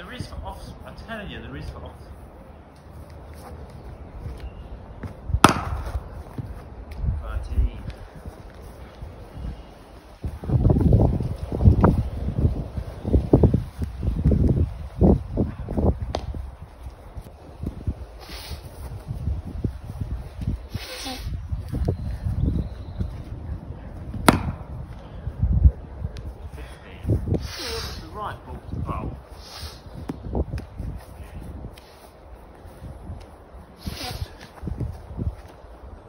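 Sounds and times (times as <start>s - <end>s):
wind on microphone: 3.9s - 36.0s
cricket bat striking ball: 5.4s - 6.0s, 24.2s - 24.7s.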